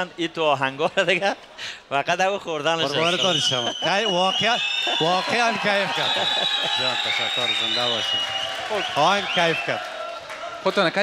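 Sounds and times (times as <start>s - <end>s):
man speaking: 0.0s - 6.2s.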